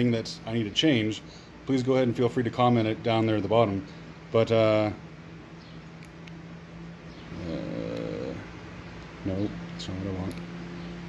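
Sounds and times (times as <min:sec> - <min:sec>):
steady background hum: 0:00.0 - 0:11.0
man humming: 0:07.3 - 0:08.6.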